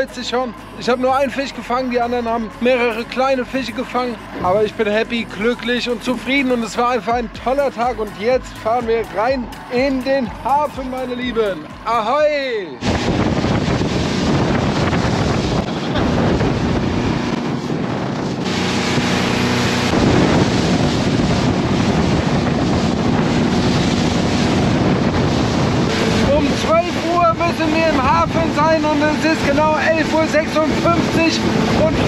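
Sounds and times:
motorboat engine drone: 0.0 - 32.0
rushing water: 0.0 - 32.0
wind buffeting microphone: 12.7 - 32.0
person speaking: 26.0 - 32.0.

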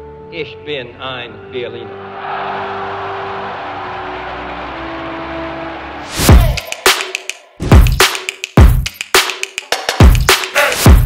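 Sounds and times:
crowd cheering and applauding: 2.0 - 7.4.

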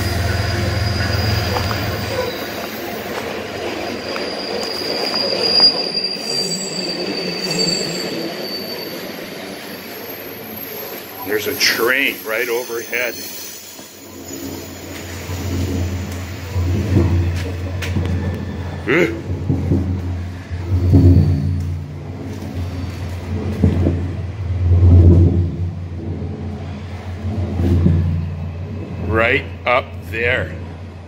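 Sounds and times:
train rumbling overhead: 0.0 - 31.0.

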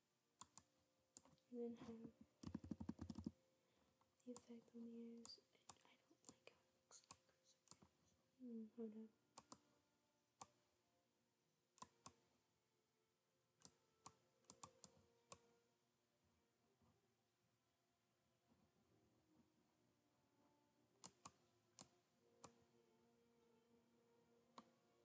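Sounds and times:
computer mouse clicks: 0.4 - 1.4, 2.4 - 3.4, 9.4 - 9.6, 11.8 - 12.2, 13.6 - 15.5, 21.0 - 22.6.

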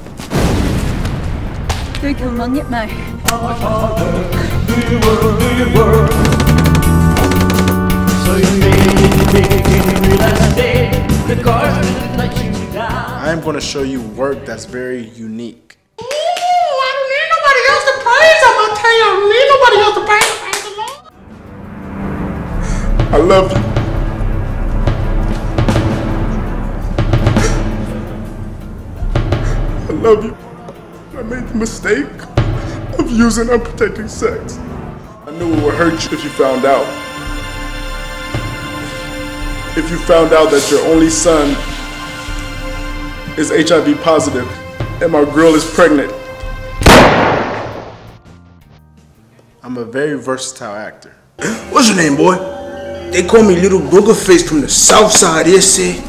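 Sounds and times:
loud echoing bang: 0.3 - 2.1, 46.8 - 48.2
hand claps: 20.2 - 21.1
faint background music: 29.2 - 56.0.

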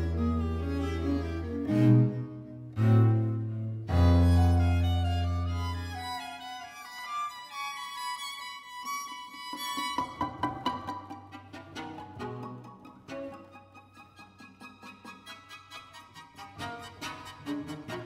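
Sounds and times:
string quartet playing: 0.0 - 18.0.

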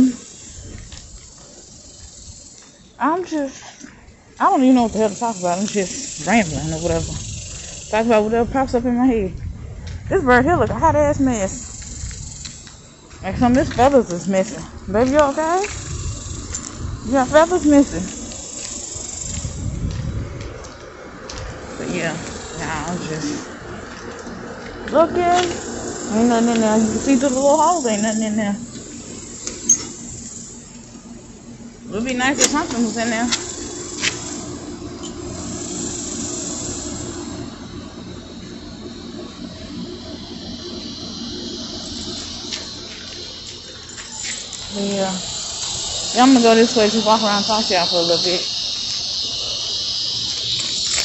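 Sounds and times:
wind rumbling on microphone: 0.0 - 2.6, 3.9 - 28.0
low hum with hiss: 0.0 - 51.0.

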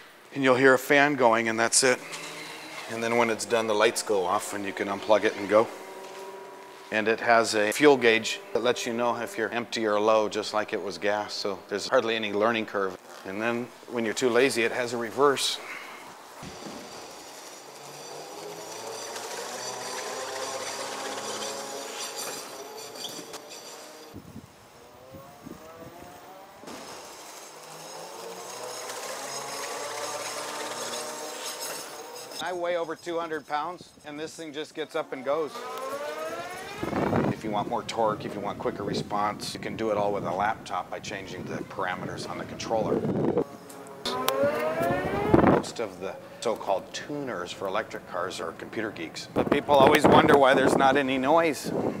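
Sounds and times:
electric motor whining: 1.9 - 3.6, 15.7 - 32.4, 35.4 - 37.3, 43.1 - 45.8.

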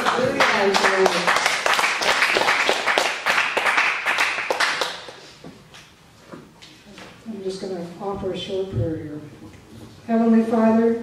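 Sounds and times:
congregation applauding: 0.0 - 5.4.

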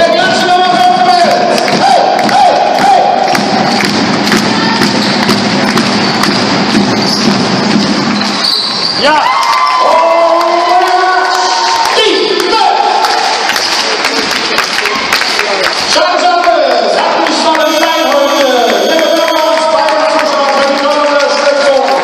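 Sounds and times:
spectators cheering: 0.1 - 22.0
basketball dribbling: 0.7 - 8.7.

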